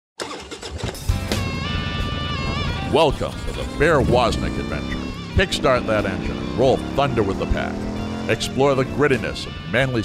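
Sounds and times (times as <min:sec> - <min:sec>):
motorcycle engine rumbling: 0:00.2 - 0:10.0
intro music with held tones: 0:01.1 - 0:09.7.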